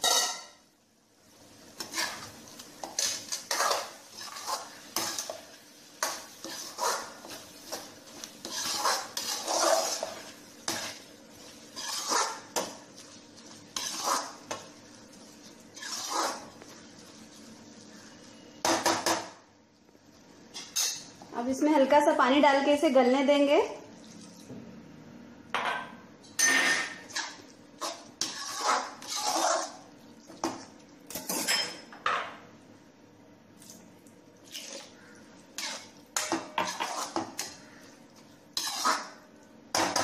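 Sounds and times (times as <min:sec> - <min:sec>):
metal spatula scraping a pot: 0:00.0 - 0:00.6, 0:01.8 - 0:14.7, 0:15.7 - 0:16.7, 0:26.4 - 0:29.8, 0:30.4 - 0:31.8, 0:34.5 - 0:37.9, 0:38.5 - 0:39.2.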